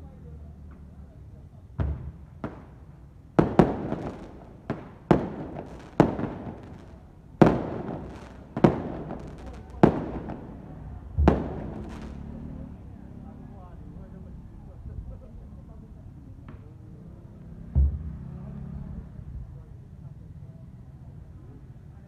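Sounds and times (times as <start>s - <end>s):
firecrackers banging: 1.8s - 12.8s.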